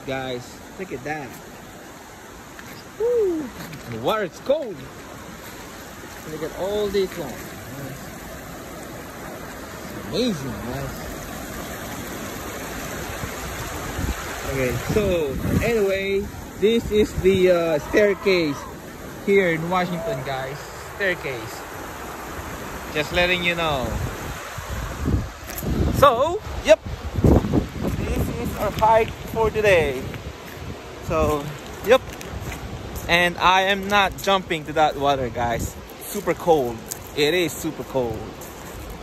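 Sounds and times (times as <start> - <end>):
river rushing over rocks: 0.0 - 39.0
wind buffeting microphone: 5.1 - 20.8, 23.5 - 39.0.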